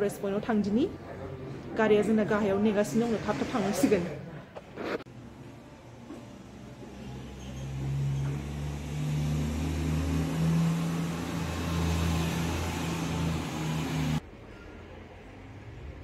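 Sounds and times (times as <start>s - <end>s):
vehicle engine running: 5.9s - 14.2s.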